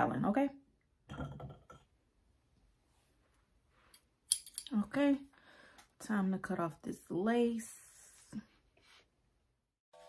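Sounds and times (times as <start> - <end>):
woman's voice: 0.0 - 0.6, 4.6 - 5.4, 6.0 - 8.6.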